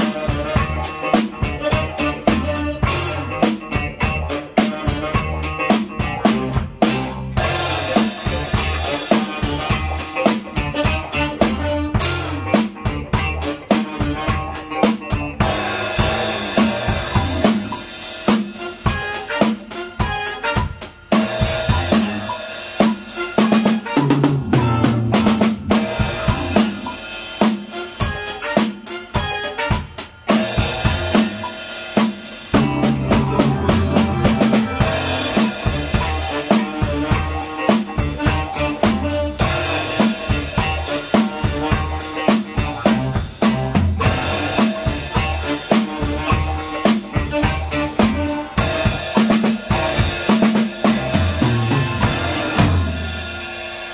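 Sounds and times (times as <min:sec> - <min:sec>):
band backing track with bass: 0:00.0 - 0:53.9
drum kit playing groove: 0:00.0 - 0:53.9.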